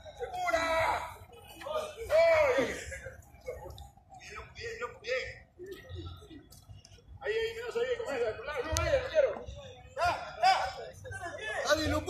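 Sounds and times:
men talking indistinctly: 0.0s - 5.4s, 7.2s - 12.0s.

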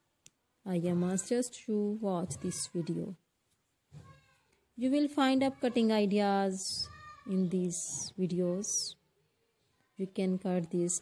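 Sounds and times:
woman narrating: 0.7s - 3.2s, 4.8s - 9.0s, 10.0s - 11.0s.

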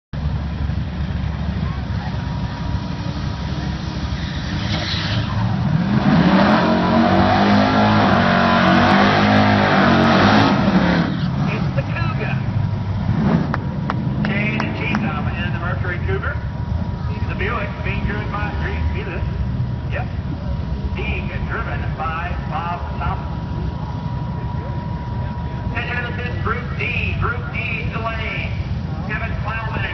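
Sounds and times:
car engine revving: 0.3s - 29.9s
tyres spinning and squealing: 3.6s - 12.4s.

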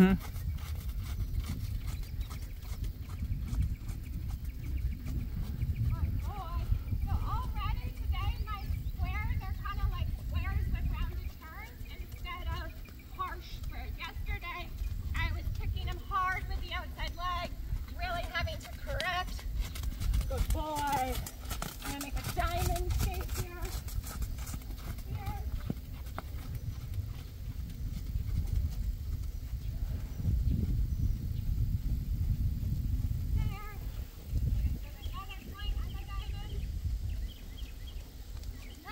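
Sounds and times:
people talking: 0.0s - 0.2s, 5.9s - 19.4s, 20.2s - 21.2s, 21.8s - 23.8s, 25.0s - 25.6s, 33.4s - 33.9s, 34.6s - 36.6s
horse hoofbeats on sand: 0.0s - 31.0s, 33.2s - 38.9s.

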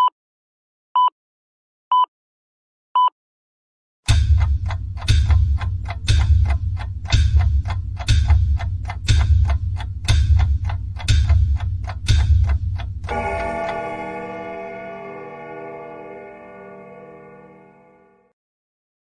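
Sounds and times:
clock ticks with deep thud: 4.1s - 15.5s
ringing chime: 13.1s - 18.2s.

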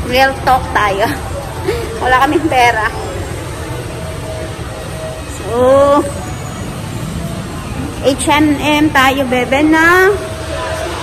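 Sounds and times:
faint voices: 0.0s - 11.0s
mall background rumble and hiss: 0.0s - 11.0s.

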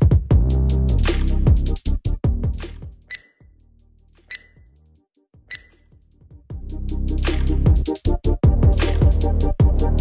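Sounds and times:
electronic background music: 0.4s - 10.0s
short high timer beeps: 3.1s - 3.4s, 4.3s - 4.6s, 5.5s - 5.8s.

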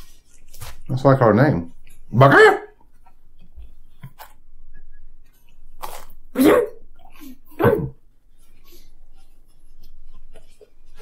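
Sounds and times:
dog barking: 2.2s - 2.8s, 6.4s - 6.8s.

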